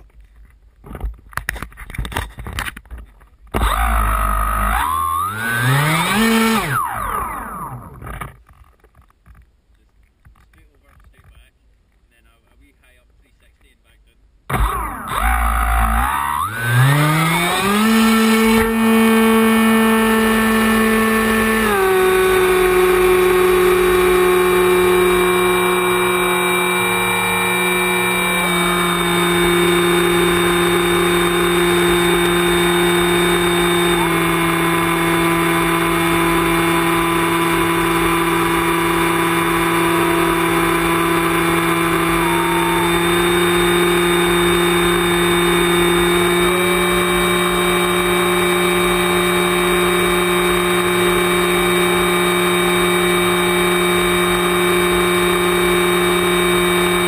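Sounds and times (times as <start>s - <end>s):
model aircraft motor whining: 3.5s - 8.3s, 14.5s - 57.0s.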